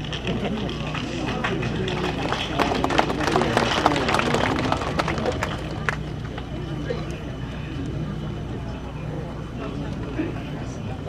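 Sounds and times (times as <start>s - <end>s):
crowd murmur: 0.0s - 11.0s
steady low hum: 0.0s - 11.0s.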